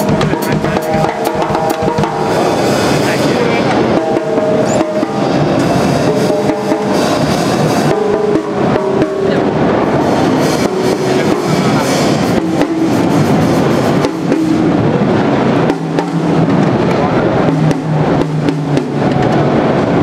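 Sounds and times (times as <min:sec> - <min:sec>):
crowd chatter: 0:00.0 - 0:20.0
cymbal hits: 0:00.0 - 0:20.0
drum kit playing: 0:00.0 - 0:20.0.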